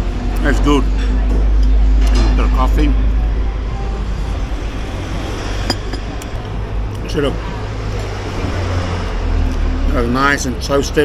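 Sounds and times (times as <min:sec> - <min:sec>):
bus passing: 0:00.0 - 0:10.6
street traffic rumble: 0:00.0 - 0:11.0
coffee mug set on saucer: 0:05.7 - 0:06.4.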